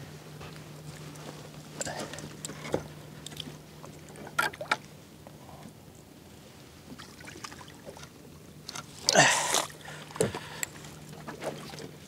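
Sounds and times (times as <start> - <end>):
low steady hum: 0.0 - 12.0
landing net in water: 1.8 - 4.9, 6.8 - 12.0.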